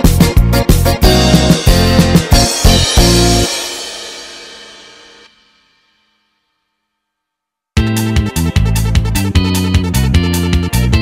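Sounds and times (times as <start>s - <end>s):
keyboard chord ringing out: 0.0s - 5.0s
cymbal ringing: 2.3s - 6.3s.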